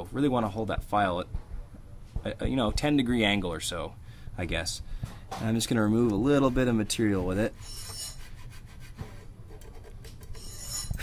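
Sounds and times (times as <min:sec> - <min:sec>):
nut file rasping: 0:06.3 - 0:09.0.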